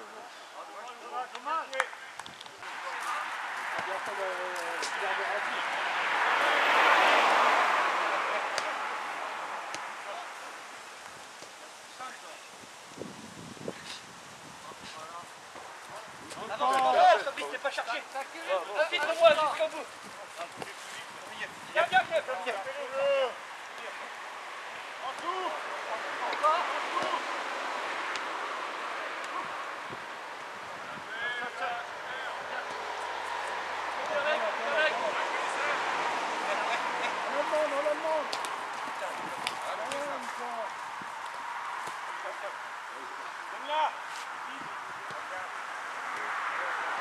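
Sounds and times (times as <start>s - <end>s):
steady outdoor noise: 0.0s - 47.0s
players shouting: 24.9s - 29.9s.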